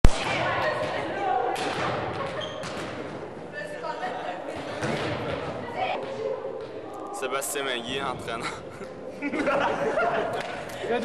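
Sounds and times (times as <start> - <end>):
thud: 4.6 - 6.8.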